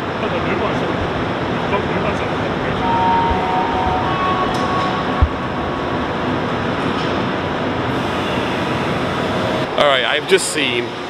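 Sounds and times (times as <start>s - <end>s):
high whine: 2.2s - 9.3s.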